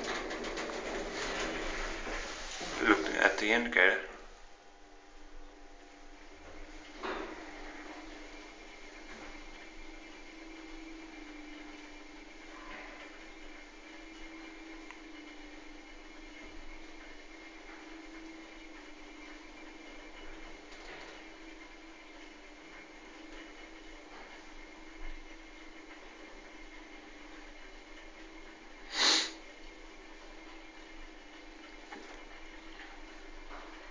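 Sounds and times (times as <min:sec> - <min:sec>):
elevator hum with whine: 0:00.0 - 0:33.9.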